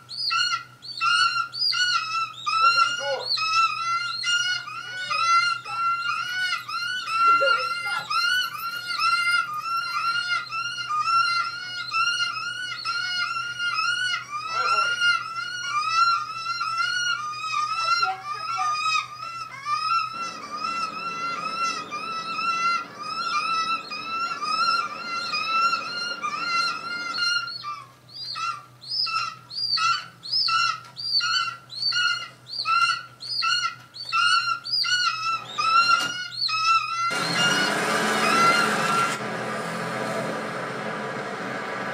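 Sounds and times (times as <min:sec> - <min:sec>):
synthetic bird screech: 0:00.2 - 0:39.3
burst of rushing noise: 0:37.1 - 0:41.9.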